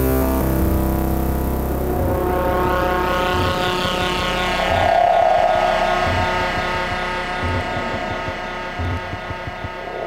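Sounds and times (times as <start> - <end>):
low synth pulse: 0.0 - 10.0
synthesizer drone: 0.0 - 10.0.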